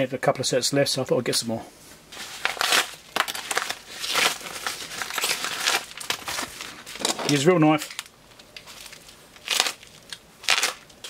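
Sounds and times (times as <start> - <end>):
padded mailer crinkling: 2.1 - 11.0.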